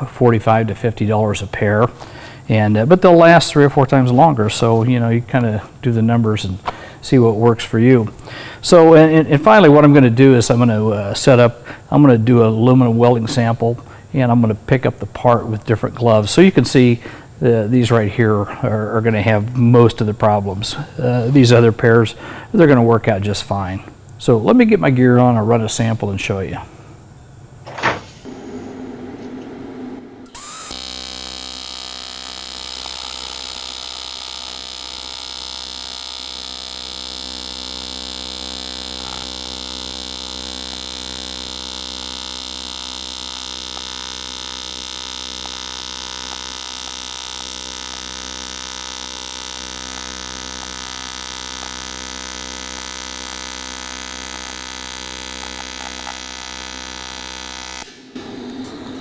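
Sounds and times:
welding arc buzzing: 0.0s - 24.4s, 28.2s - 59.0s.

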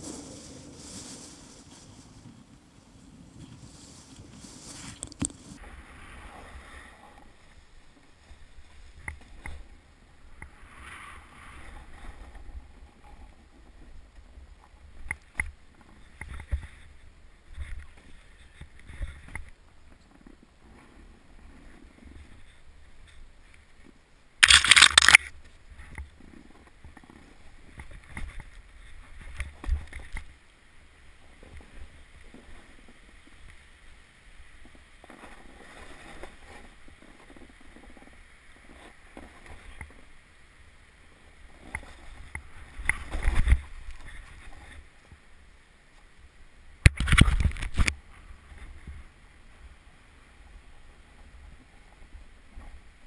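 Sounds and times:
loud scraping rush in snow: 0.0s - 7.6s
snowboard moving through snow: 0.0s - 14.5s, 27.2s - 46.2s.

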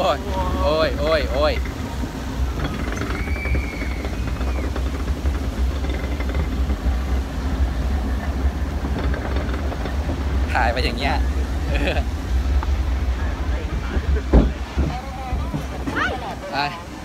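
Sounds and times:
lift conveyor rumble and rattle: 0.0s - 17.0s.

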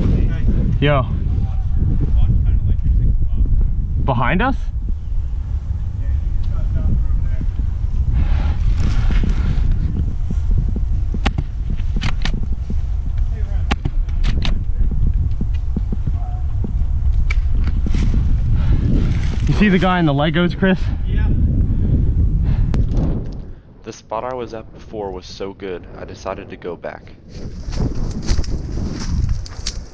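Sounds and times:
wind buffeting microphone: 0.0s - 29.9s
sharp clicks: 11.2s - 12.5s, 13.2s - 16.0s, 17.1s - 17.8s.

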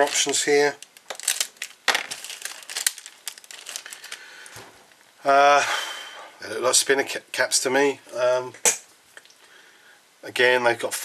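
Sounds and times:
plastic bag crinkling: 0.0s - 5.0s.

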